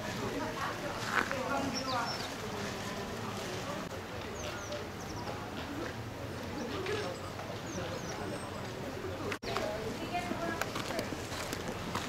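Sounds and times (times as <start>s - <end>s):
murmur of people talking: 0.0s - 12.0s
small birds chirping: 1.3s - 11.1s.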